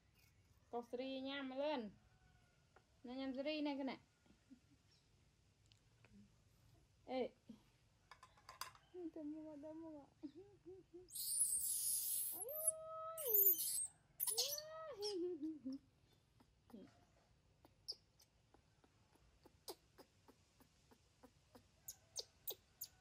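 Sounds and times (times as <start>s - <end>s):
baby monkey screeching and wailing: 11.1s - 15.1s.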